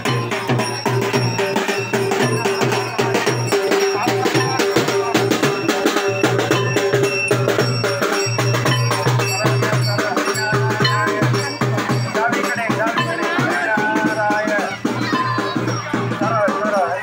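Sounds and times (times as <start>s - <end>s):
clanking metal percussion: 0.0s - 17.0s
drums beaten fast: 0.0s - 17.0s.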